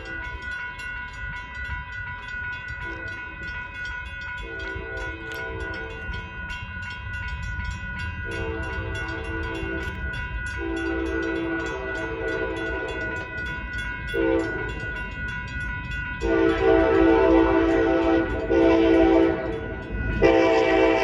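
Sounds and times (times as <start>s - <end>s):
crossing bell ringing: 0.0s - 21.0s
train horn blasts: 10.6s - 13.1s, 14.2s - 14.6s, 16.2s - 21.0s.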